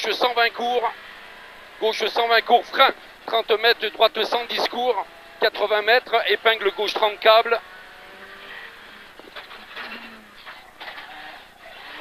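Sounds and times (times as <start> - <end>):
rally car engine: 0.0 - 12.0.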